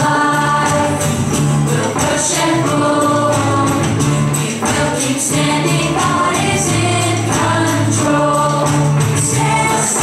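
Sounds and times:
children group singing: 0.0s - 10.0s
music with steady beat: 0.0s - 10.0s.

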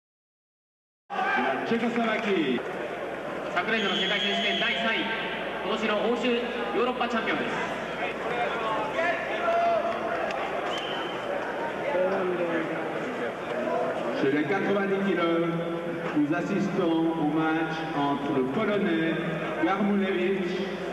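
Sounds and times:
man commentating: 1.1s - 2.6s, 3.5s - 9.9s, 14.1s - 20.9s.

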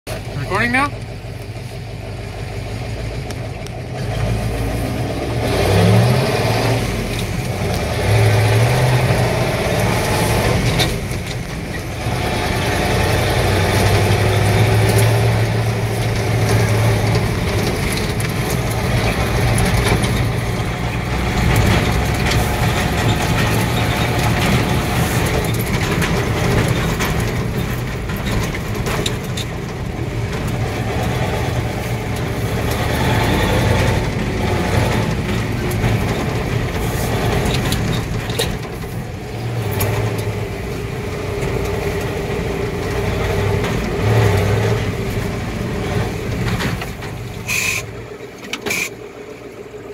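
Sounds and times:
truck engine revving: 0.1s - 49.9s.

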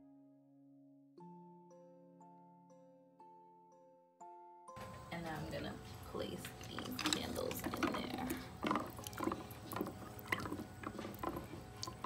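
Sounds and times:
candles knocking together: 6.5s - 12.0s.

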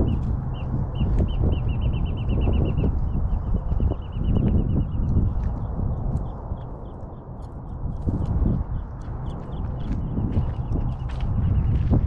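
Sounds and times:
bird chirping: 0.0s - 7.5s
wind buffeting microphone: 0.0s - 12.0s.

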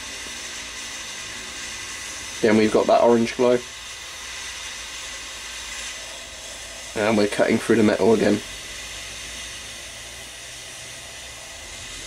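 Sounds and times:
butane torch lighter hissing: 0.0s - 12.0s.

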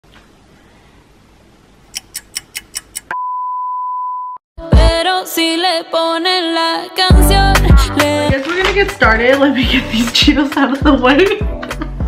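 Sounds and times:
short high clicks: 1.9s - 3.2s.

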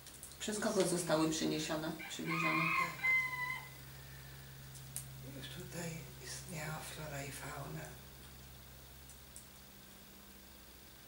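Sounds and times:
low steady hum: 0.0s - 11.0s
high-pitched animal call: 2.0s - 3.8s.

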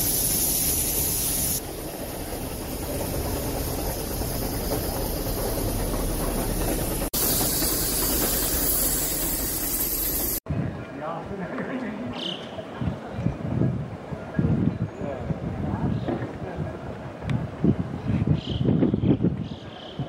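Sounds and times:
steam hissing: 0.0s - 10.4s
train rumbling on rack: 0.0s - 10.4s.

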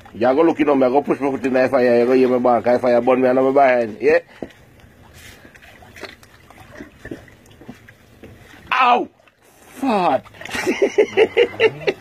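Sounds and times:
hands splashing shallow water: 4.2s - 11.4s.

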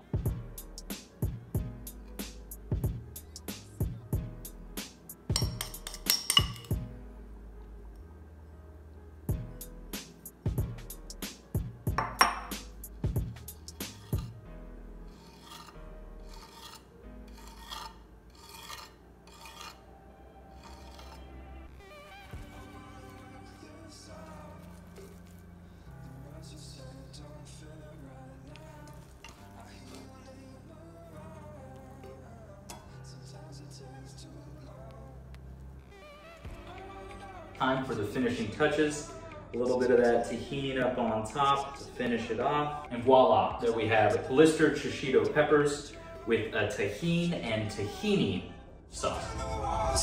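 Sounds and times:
metal spoon clicking on slate: 5.4s - 6.7s
spoon scraping strokes: 13.2s - 14.4s, 15.0s - 19.9s, 20.5s - 27.0s, 28.5s - 30.8s.

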